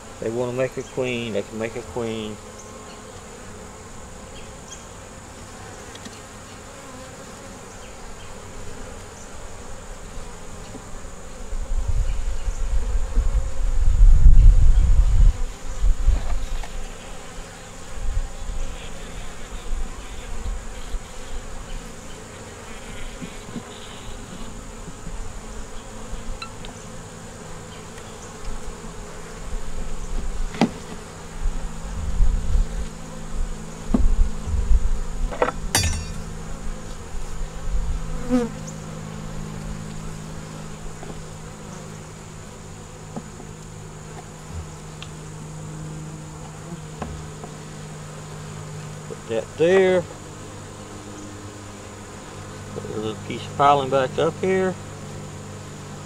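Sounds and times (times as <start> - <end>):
honeybees buzzing: 0.0 - 56.0.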